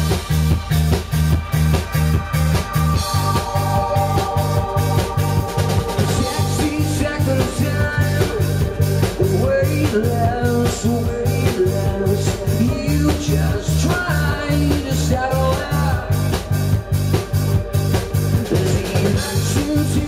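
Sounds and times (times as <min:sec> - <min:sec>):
rock band playing: 0:00.0 - 0:20.0
man singing: 0:05.9 - 0:16.6, 0:18.3 - 0:20.0.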